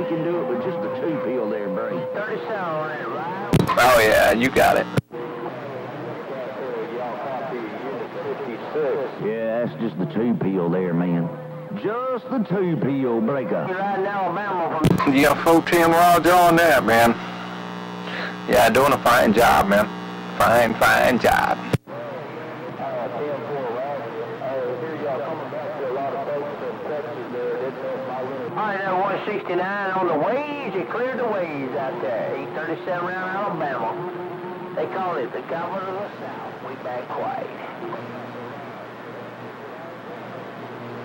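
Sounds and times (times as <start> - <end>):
radio static hiss: 0.0 - 13.0, 14.0 - 41.0
distant voice over radio: 18.0 - 21.7.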